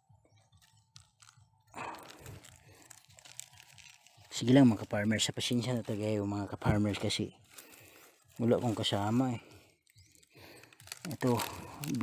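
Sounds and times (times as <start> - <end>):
crunch: 0.1 - 12.0
dry mulch crackling and rustling: 0.1 - 12.0.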